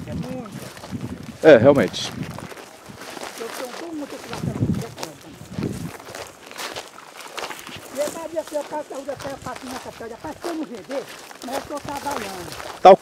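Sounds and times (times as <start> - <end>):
person talking indistinctly: 0.0 - 2.2, 3.3 - 5.9, 7.8 - 13.0
footsteps through dry grass: 0.0 - 13.0.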